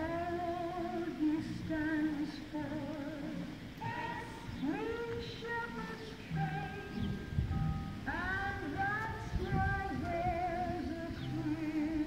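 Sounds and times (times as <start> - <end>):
woman singing with vibrato: 0.0 - 7.4, 8.0 - 12.0.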